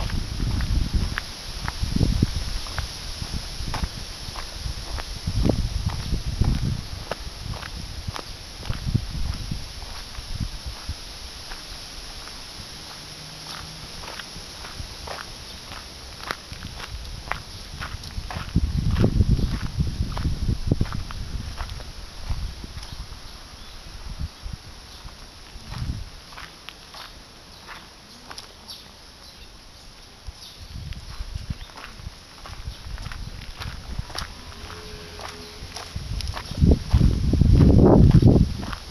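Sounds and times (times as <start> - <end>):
footsteps on dirt path: 0.0 - 24.3, 24.9 - 38.9.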